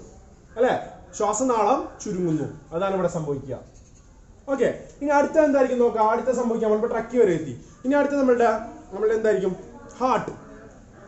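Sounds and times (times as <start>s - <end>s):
man speaking: 0.6s - 3.7s, 4.5s - 10.4s.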